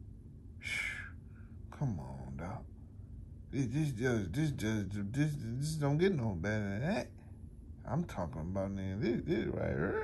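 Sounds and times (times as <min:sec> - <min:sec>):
man breathing: 0:00.6 - 0:01.6.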